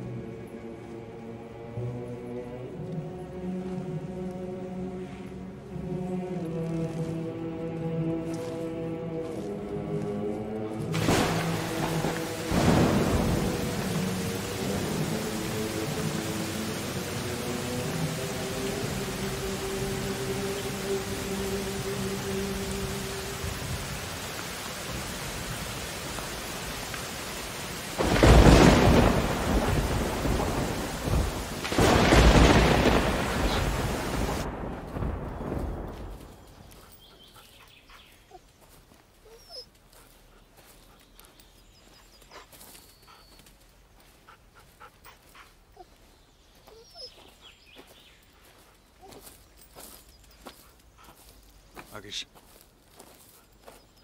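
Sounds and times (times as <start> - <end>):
orchestral film music: 0.0 - 36.9
heavy rain hissing: 2.6 - 38.2
thunder claps: 11.0 - 20.1, 28.0 - 36.6
thunder rolling: 11.0 - 20.2, 28.0 - 36.6.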